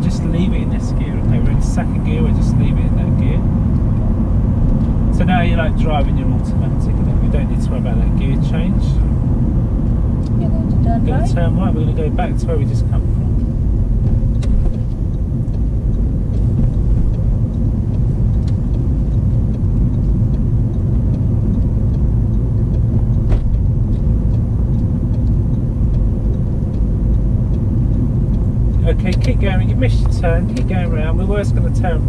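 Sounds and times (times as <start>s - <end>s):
engine and tyre rumble: 0.0s - 32.0s.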